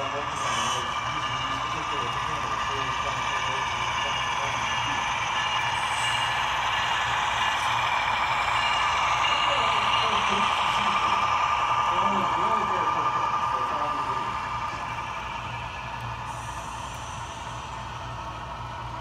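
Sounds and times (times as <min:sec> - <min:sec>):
model train diesel engine drone: 0:00.0 - 0:19.0.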